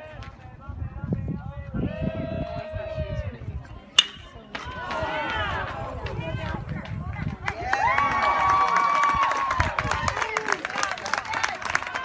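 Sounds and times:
metal bat hitting ball: 4.0s - 4.9s
spectators shouting and cheering: 4.0s - 6.2s, 7.5s - 10.5s.

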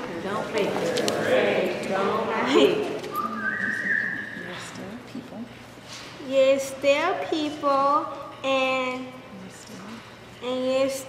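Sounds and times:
quiet murmured speech: 0.0s - 11.0s
high whistle-like tone: 3.1s - 4.8s.

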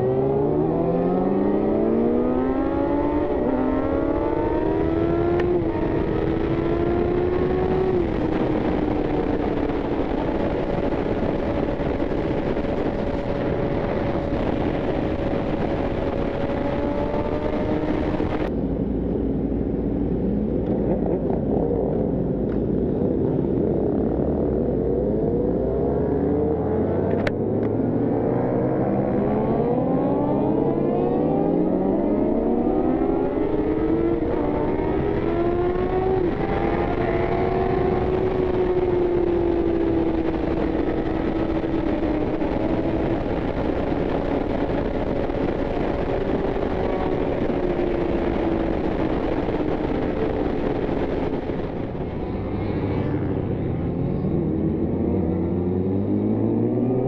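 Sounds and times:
motorcycle engine accelerating: 0.0s - 18.6s, 20.1s - 57.0s
wind rush on microphone: 0.0s - 57.0s.

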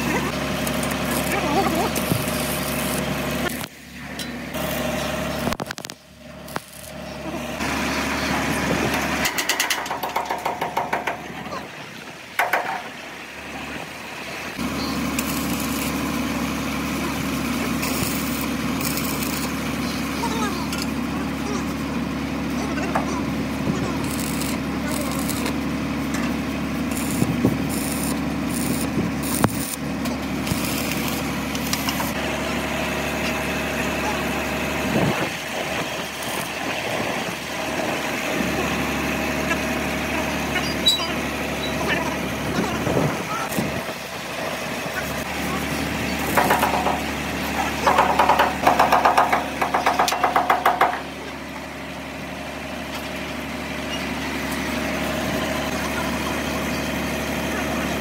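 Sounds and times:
welding arc crackling and hissing: 0.0s - 3.9s, 4.5s - 9.1s, 14.6s - 21.9s, 23.2s - 39.0s, 45.1s - 47.8s
engine idling: 0.0s - 58.0s
rapid buzzing pulses: 26.8s - 32.2s.

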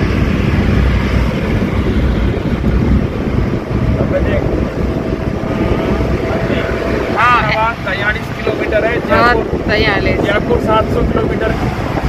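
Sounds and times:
road and wind noise: 0.0s - 12.0s
van engine drone: 0.0s - 12.0s.

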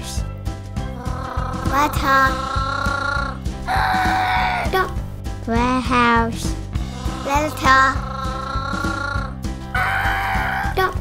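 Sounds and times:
background music with steady beat: 0.0s - 11.0s
child making vocal sound effect: 1.0s - 4.9s, 7.0s - 9.4s.

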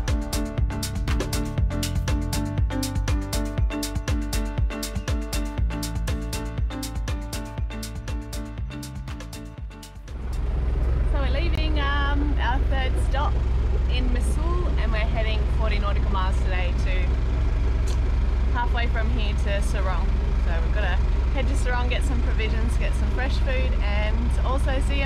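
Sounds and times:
music: 0.0s - 13.2s, 21.3s - 25.0s
low engine hum: 0.0s - 25.0s.

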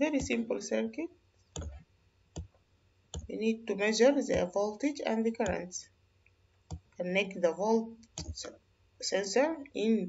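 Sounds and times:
computer mouse clicks: 1.6s - 1.8s, 3.2s - 3.4s, 6.7s - 7.0s, 8.0s - 8.5s.

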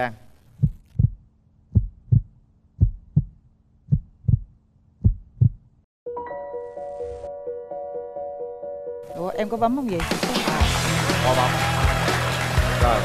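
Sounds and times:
heartbeat thumps: 0.5s - 5.7s.

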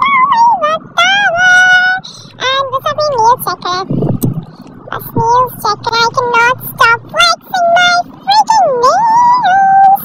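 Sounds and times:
high-pitched voice singing: 0.0s - 4.3s, 4.9s - 10.0s.

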